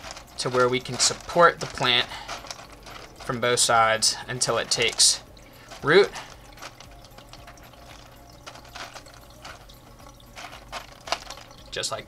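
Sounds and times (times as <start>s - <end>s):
clay pebbles clicking and rattling: 0.0s - 12.0s
water trickling: 0.0s - 12.0s.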